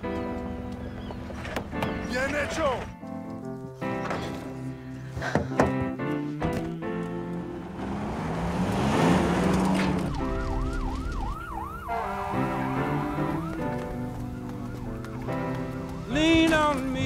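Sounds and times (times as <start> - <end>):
truck rushing over dirt: 7.0 - 11.4
siren yelping: 9.8 - 15.5.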